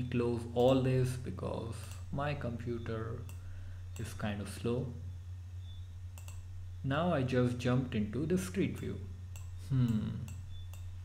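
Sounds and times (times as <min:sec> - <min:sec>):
low electrical hum: 0:00.0 - 0:11.0
computer mouse clicking: 0:06.1 - 0:06.5, 0:08.7 - 0:10.9.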